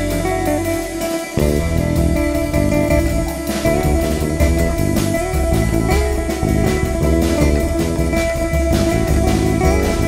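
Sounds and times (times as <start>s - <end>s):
bass: 0.0s - 10.0s
drums: 0.0s - 10.0s
jazz guitar: 0.0s - 10.0s.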